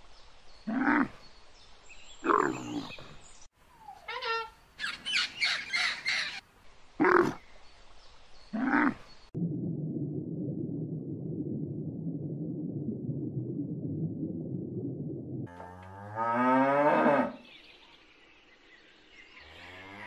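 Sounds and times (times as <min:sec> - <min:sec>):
macaw squawking: 0:04.0 - 0:06.4
steady low hum: 0:09.4 - 0:15.5.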